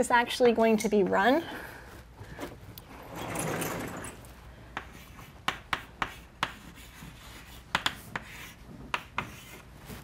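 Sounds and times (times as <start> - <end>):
chalk scratching on blackboard: 4.8 - 10.0.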